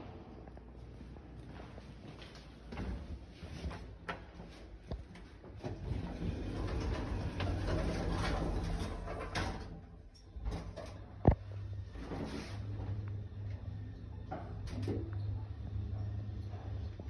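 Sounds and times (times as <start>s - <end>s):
lift doors sliding shut: 5.5s - 11.3s
lift car humming: 5.5s - 16.4s.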